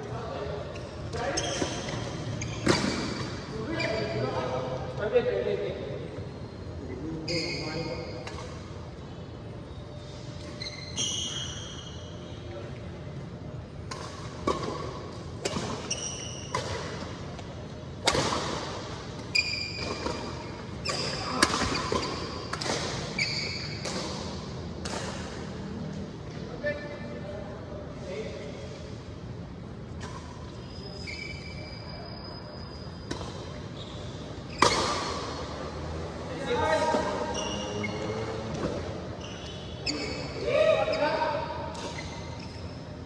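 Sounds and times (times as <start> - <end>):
shoes squeaking on floor: 0.8 - 4.4, 6.2 - 8.2, 9.7 - 12.5, 15.5 - 17.2, 19.2 - 24.4, 30.5 - 35.5, 36.5 - 43.0
racket hitting shuttlecock: 13.8 - 17.1, 18.0 - 25.5, 34.5 - 35.5.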